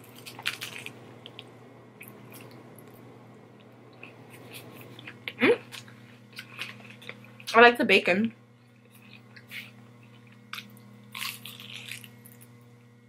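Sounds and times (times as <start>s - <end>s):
person chewing: 0.0s - 7.5s, 8.6s - 12.6s.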